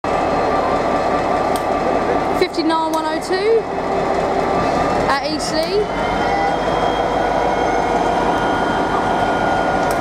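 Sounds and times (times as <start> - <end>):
diesel locomotive engine: 0.0 - 10.0
train wheel noise: 0.0 - 10.0.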